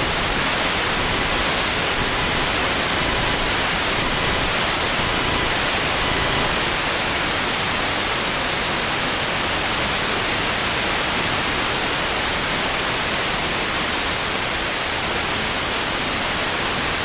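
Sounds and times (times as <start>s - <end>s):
radio static hiss: 0.0s - 8.4s.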